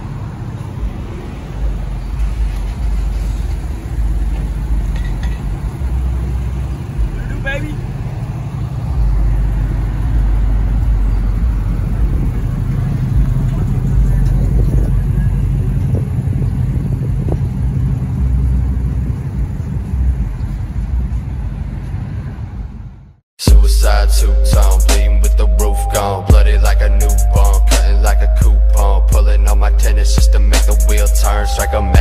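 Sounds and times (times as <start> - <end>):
background voices: 0.0 - 19.7
car engine idling: 0.0 - 21.8.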